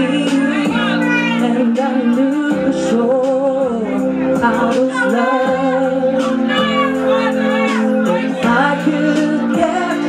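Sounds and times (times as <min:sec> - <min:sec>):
backing track: 0:00.0 - 0:10.0
person singing karaoke: 0:00.0 - 0:10.0.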